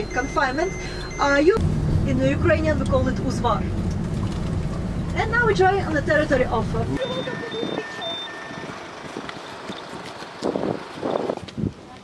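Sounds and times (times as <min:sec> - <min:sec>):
short electronic beeps: 0:00.0 - 0:01.6, 0:07.0 - 0:08.8.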